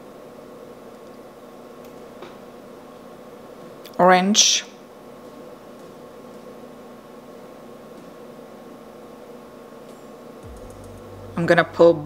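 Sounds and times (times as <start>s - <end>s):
faint constant tone: 0.0s - 12.0s
low hum: 5.2s - 12.0s.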